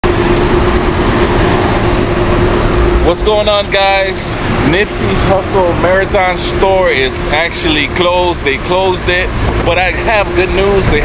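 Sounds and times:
constant hum: 0:00.0 - 0:11.0
street traffic noise: 0:00.0 - 0:11.0.

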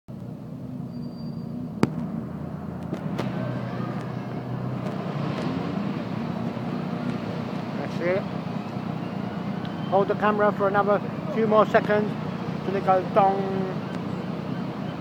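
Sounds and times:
road traffic hum: 0:00.1 - 0:15.0
faint distant voices: 0:03.3 - 0:04.8.

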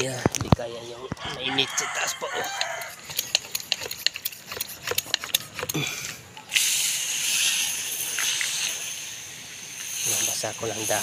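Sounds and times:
water spray hissing: 0:02.6 - 0:11.0.

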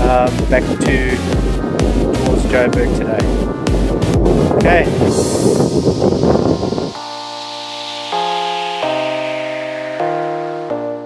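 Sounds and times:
wind buffeting microphone: 0:00.0 - 0:07.4
sustained keyboard chords: 0:00.0 - 0:11.0.

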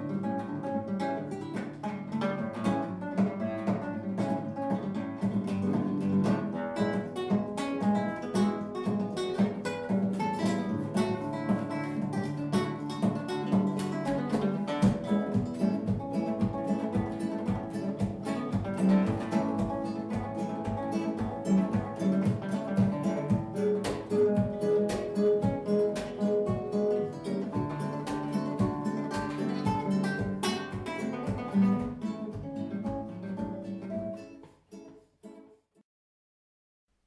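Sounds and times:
acoustic guitar music: 0:00.0 - 0:35.8.

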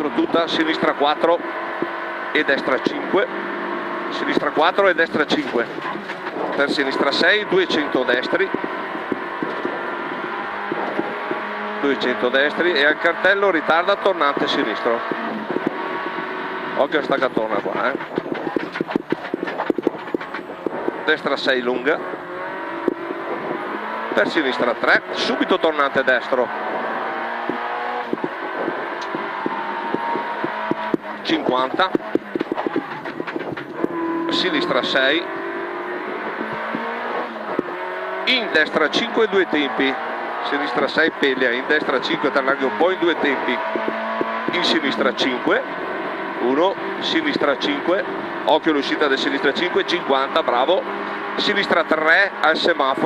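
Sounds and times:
car engine at steady revs: 0:00.0 - 0:53.0
road and wind noise: 0:00.0 - 0:53.0.

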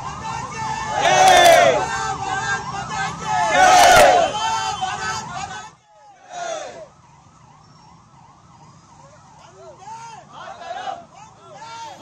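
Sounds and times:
vehicle siren yelping: 0:00.0 - 0:12.0.

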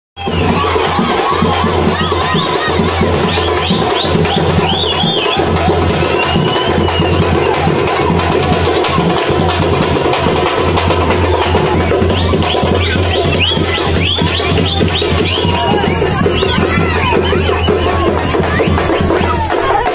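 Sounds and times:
crowd noise: 0:00.2 - 0:19.9
procession drumming: 0:00.2 - 0:19.9.

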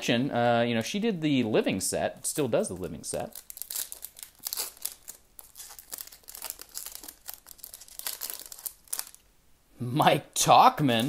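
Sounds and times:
foil wrapper crinkling: 0:03.2 - 0:09.3.

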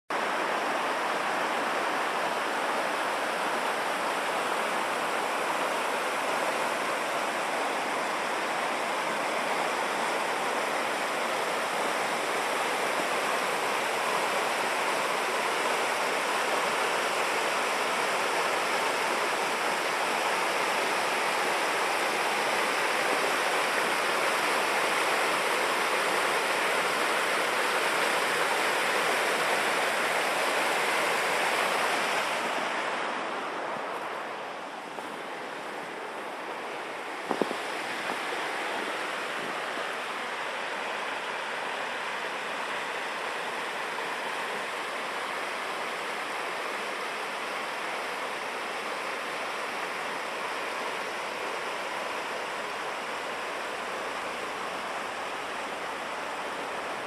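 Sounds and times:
stream rushing over rocks: 0:00.1 - 0:57.0.

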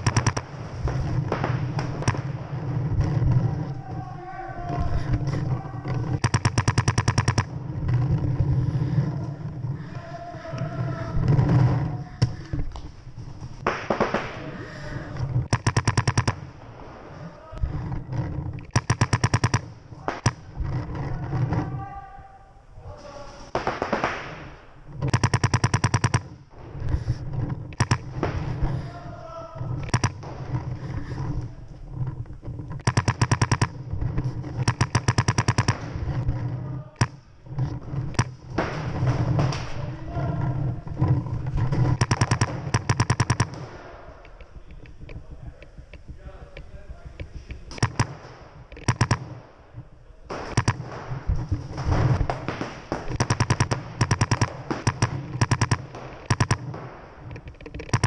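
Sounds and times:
paintball markers firing: 0:00.0 - 0:03.7, 0:04.7 - 0:21.7, 0:23.5 - 0:28.9, 0:29.6 - 0:45.2, 0:47.2 - 0:58.0
faint shouting: 0:03.5 - 0:06.2, 0:09.8 - 0:11.2, 0:17.1 - 0:17.7, 0:21.0 - 0:23.4, 0:28.8 - 0:29.8.

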